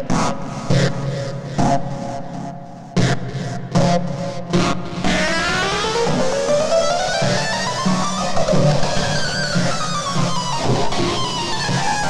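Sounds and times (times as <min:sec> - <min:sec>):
synthesizer chords: 0:05.2 - 0:10.6.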